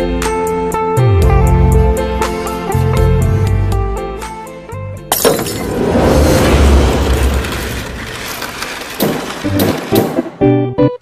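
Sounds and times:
sudden loud crash: 0:05.2 - 0:10.2
dense noisy swell: 0:05.5 - 0:09.0.

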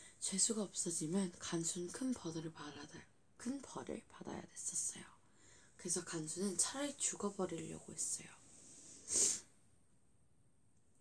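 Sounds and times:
short hissing sound: 0:08.8 - 0:09.5.

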